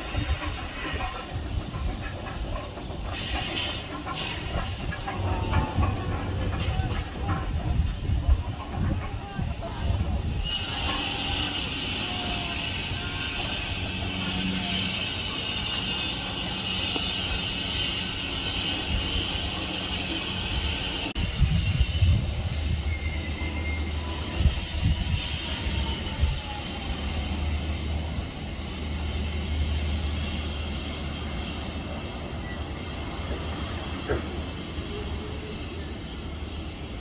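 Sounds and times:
roller coaster rumbling on track: 0.0 - 37.0.

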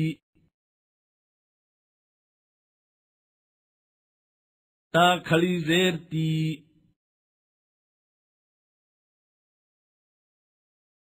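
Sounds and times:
man chanting syllables: 0.0 - 0.2, 5.0 - 6.6.

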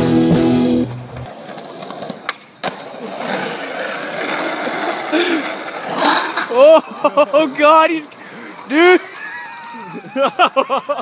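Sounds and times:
music: 0.0 - 1.2
skateboard wheels rolling on pavement: 0.0 - 11.0.

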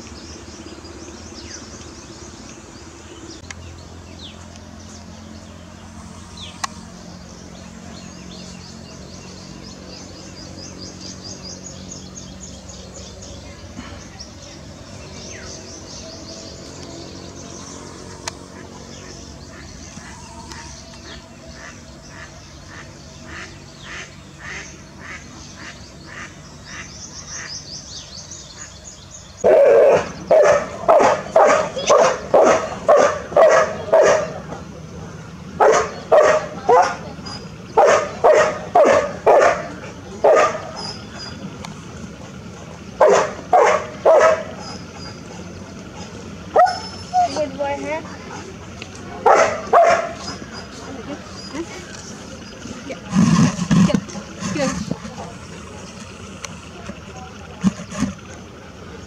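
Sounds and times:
animal calling: 9.4 - 27.7, 28.4 - 59.0.

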